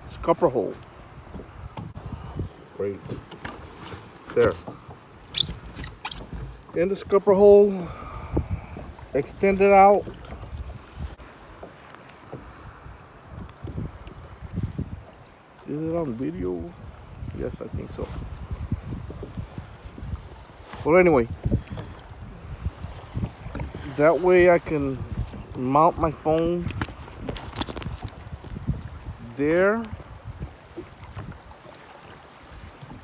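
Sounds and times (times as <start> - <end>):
wind rumbling on microphone: 0.0 - 33.0.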